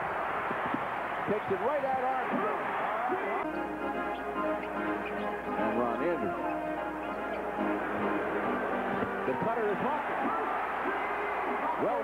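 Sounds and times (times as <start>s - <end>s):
arena crowd noise: 0.0s - 12.0s
music with held notes: 3.4s - 9.6s.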